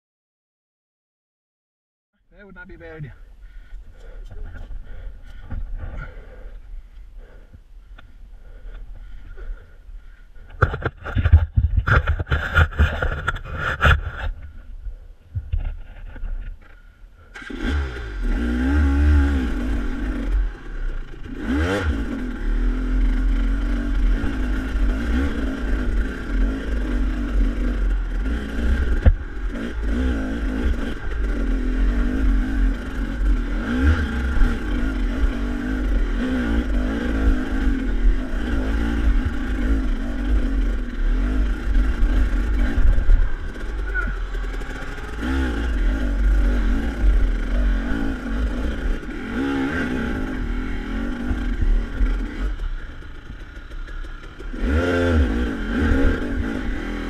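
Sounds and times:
dirt bike engine revving: 0:17.2 - 0:57.0.

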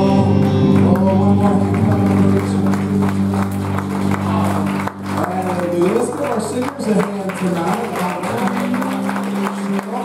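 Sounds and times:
keyboard and electric guitars: 0:00.0 - 0:10.0.

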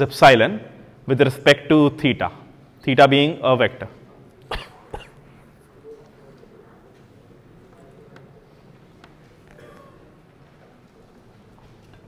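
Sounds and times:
person coughing: 0:04.4 - 0:05.3, 0:09.5 - 0:10.1.

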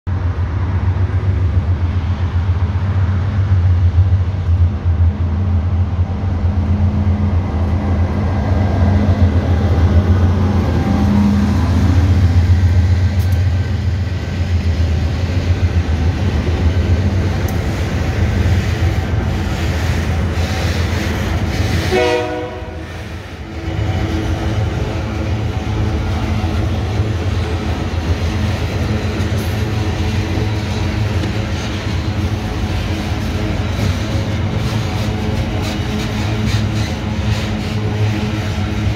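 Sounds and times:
locomotive engine rumble: 0:00.1 - 0:38.9
train wheels on rails: 0:00.1 - 0:38.9.

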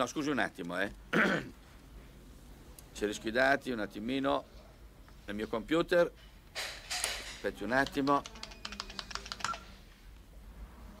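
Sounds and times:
keyboard typing clicks: 0:07.8 - 0:09.7.

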